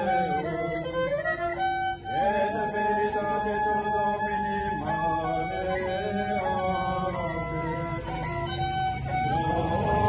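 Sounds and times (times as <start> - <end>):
slow violin melody: 0.0 - 10.0.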